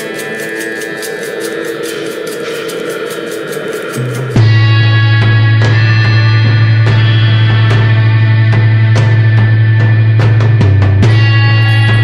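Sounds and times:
music with ticking beat: 0:00.0 - 0:12.0.

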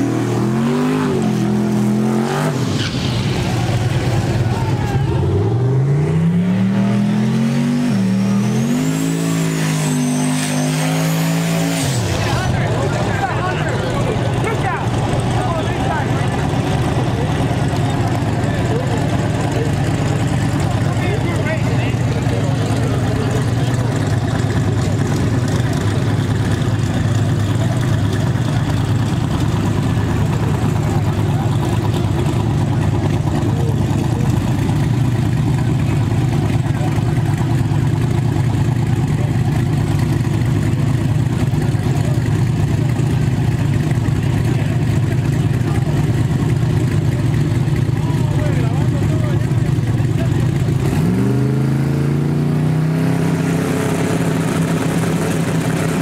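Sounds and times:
engine revving: 0:00.0 - 0:56.0
race car engines idling: 0:00.0 - 0:56.0.

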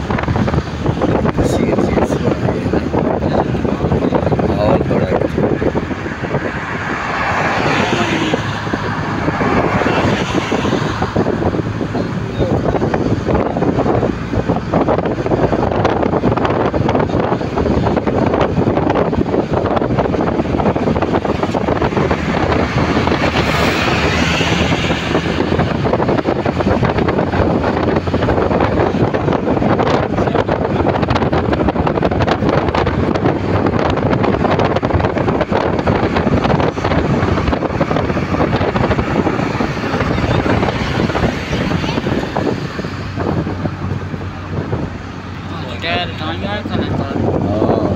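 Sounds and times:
car road noise: 0:00.0 - 0:47.9
wind rushing over microphone: 0:00.0 - 0:47.9.

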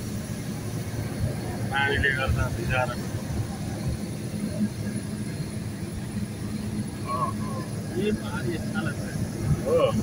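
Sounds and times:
road and engine rumble: 0:00.0 - 0:10.0.

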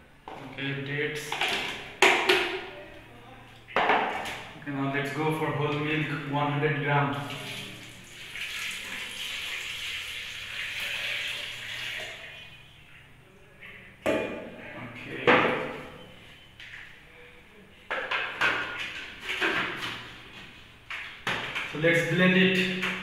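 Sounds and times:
milk pouring into a jug: 0:07.2 - 0:12.5.

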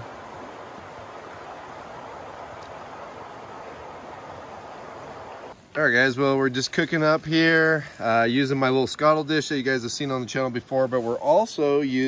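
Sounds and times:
river water rushing: 0:00.0 - 0:05.6.

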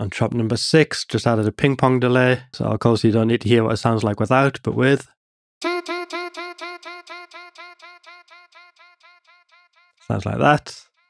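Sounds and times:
echoing vocal chop: 0:05.6 - 0:10.2.

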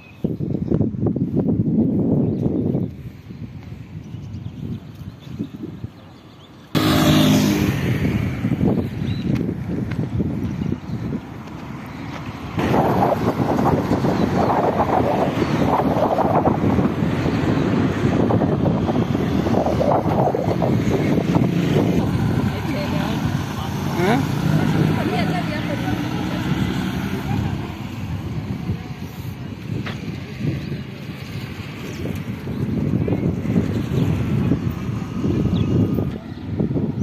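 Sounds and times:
wind buffeting microphone: 0:00.0 - 0:37.0
people talking: 0:22.4 - 0:28.0.

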